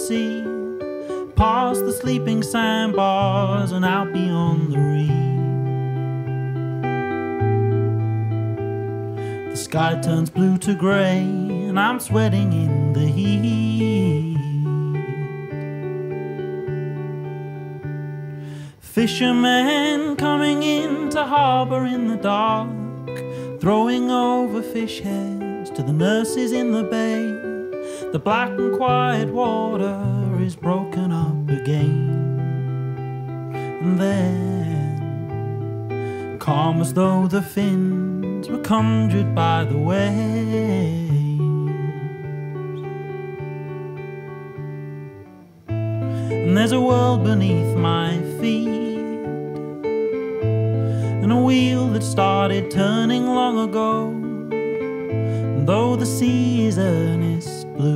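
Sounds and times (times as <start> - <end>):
clean electric guitar chords: 0.0 - 57.9.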